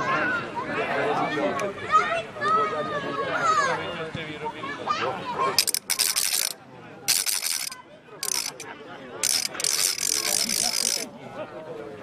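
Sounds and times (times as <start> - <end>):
faint voices: 0.0 - 12.0
rapid dry rattling: 5.6 - 8.6, 9.2 - 11.1.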